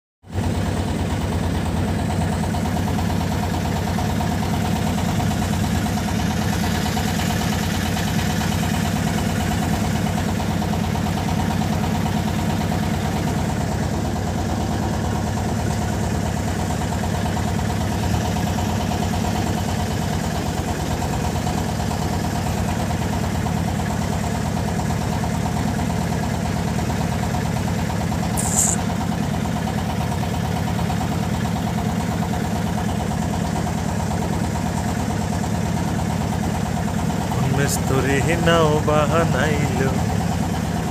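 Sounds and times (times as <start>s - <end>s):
boat engine running: 0.3s - 27.0s, 27.8s - 40.9s
high-pitched chirp: 28.4s - 28.8s.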